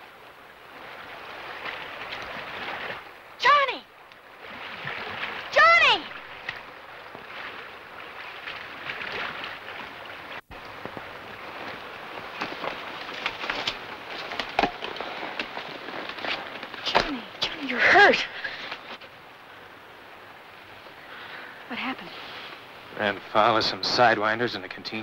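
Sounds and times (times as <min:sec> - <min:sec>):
horse splashing through water: 0:04.4 - 0:05.5, 0:06.2 - 0:17.1.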